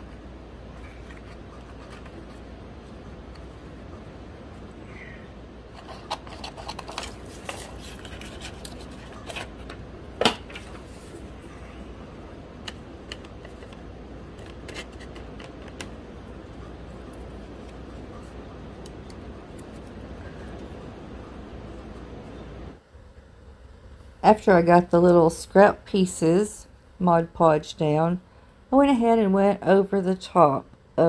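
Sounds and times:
steady low hum: 0.0s - 31.0s
paper handling: 5.8s - 9.8s.

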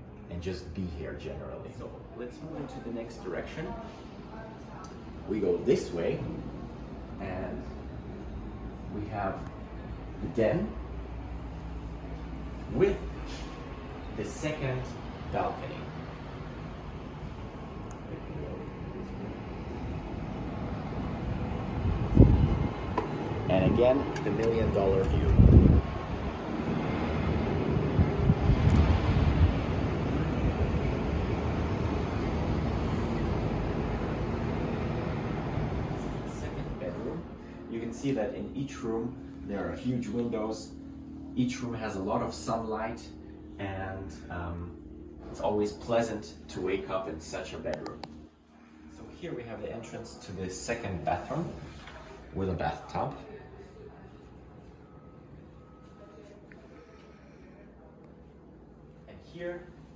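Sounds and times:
wind blowing across microphone: 21.6s - 24.1s, 25.0s - 26.5s, 27.7s - 31.2s
faint high beep: 54.6s - 57.0s.

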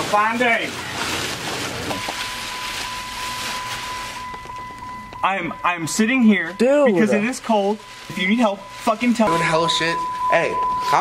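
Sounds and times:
high-pitched electronic beep tone: 1.9s - 11.0s.

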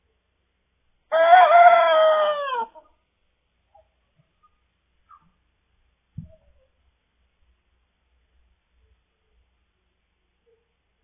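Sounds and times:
cockerel crowing: 1.1s - 2.9s.

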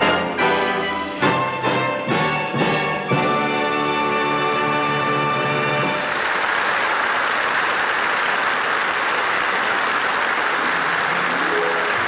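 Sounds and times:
faint orchestra notes: 0.0s - 6.3s
audience applauding: 0.0s - 12.0s.

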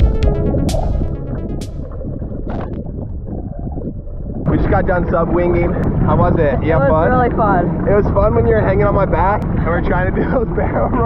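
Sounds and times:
upbeat electronic pop music: 0.0s - 2.7s
low rumble: 0.0s - 11.0s.

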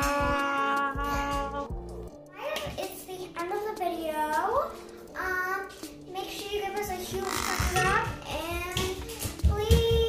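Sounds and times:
young girl singing: 2.3s - 10.0s.

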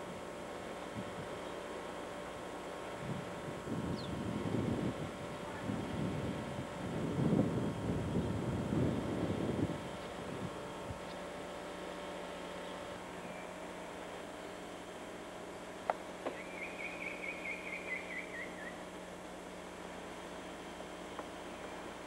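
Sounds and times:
wind buffeting microphone: 3.0s - 11.1s.

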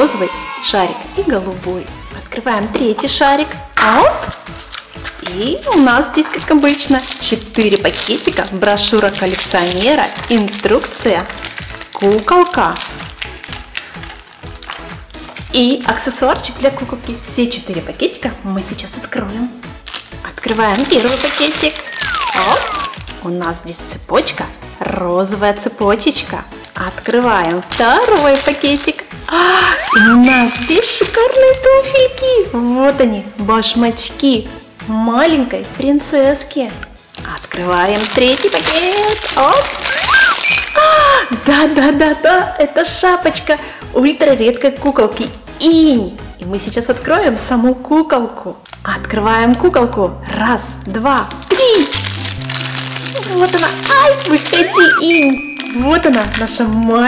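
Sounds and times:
quiet background music: 0.0s - 57.0s
plastic wrapping crackling: 4.1s - 16.2s, 19.7s - 23.5s, 26.0s - 31.7s, 37.0s - 42.2s, 48.6s - 49.7s, 50.6s - 57.0s
plastic packet rustling: 4.2s - 16.1s, 19.8s - 23.3s, 26.5s - 31.7s, 37.1s - 40.9s, 48.6s - 48.9s, 50.8s - 57.0s.

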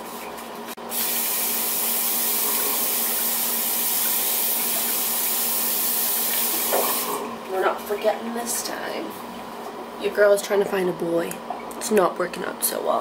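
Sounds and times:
tap water running into sink: 1.0s - 7.3s.

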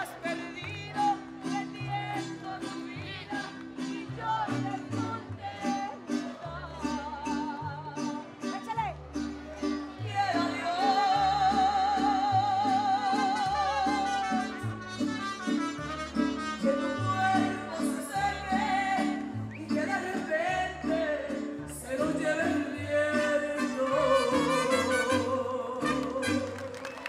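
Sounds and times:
woman singing: 0.0s - 8.3s, 10.0s - 14.6s, 16.6s - 26.8s.

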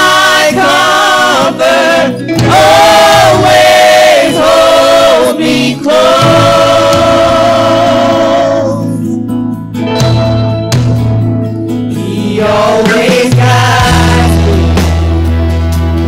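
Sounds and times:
gospel vocal group singing: 0.0s - 9.2s, 11.9s - 15.0s.

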